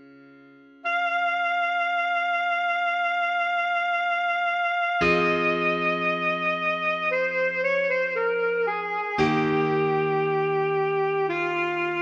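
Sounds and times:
alto saxophone melody: 0.8 - 12.0
sustained backing chord: 5.0 - 12.0.

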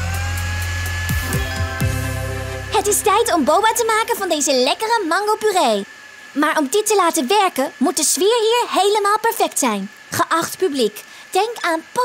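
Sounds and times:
electric blender running: 0.0 - 10.1.

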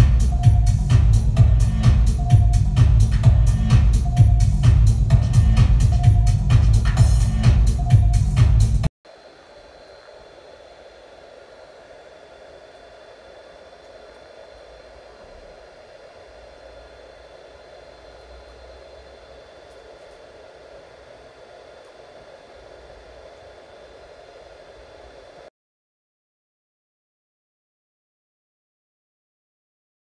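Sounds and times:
high tones: 0.0 - 8.9
faint steady hum: 0.0 - 25.5
steady hiss: 9.1 - 25.5.

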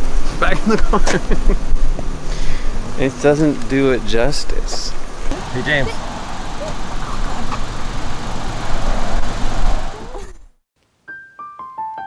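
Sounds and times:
wind buffeting microphone: 0.0 - 10.5.

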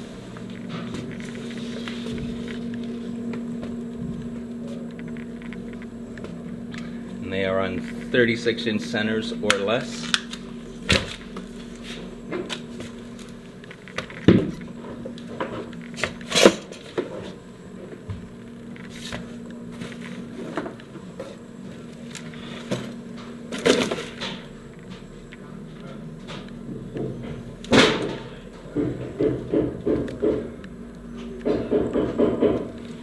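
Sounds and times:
steady low hum: 0.0 - 33.0
scattered knocks and clicks: 26.3 - 30.6, 31.4 - 33.0.

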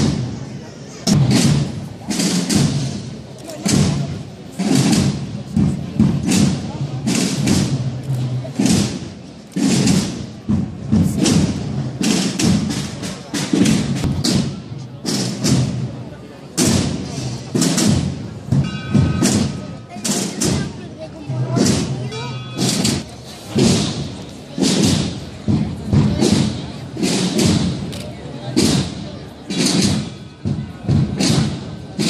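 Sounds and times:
processional drums beating: 0.0 - 32.0.

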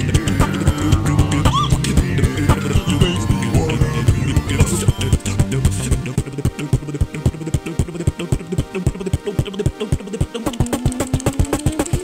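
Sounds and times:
held vocal note: 0.0 - 10.6
beatboxing: 0.0 - 12.0.

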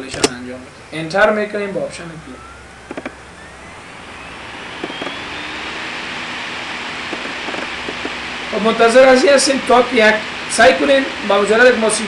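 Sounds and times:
mechanical whine rising in pitch: 1.4 - 12.0
rushing noise: 2.3 - 12.0.

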